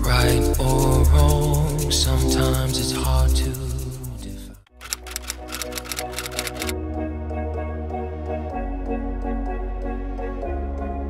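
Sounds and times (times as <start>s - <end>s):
background music: 0.0s - 11.0s
typewriter key clicks: 4.8s - 6.7s.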